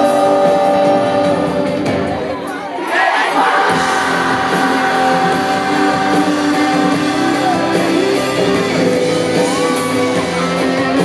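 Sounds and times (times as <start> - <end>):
pop-rock band playing: 0.0 - 11.0.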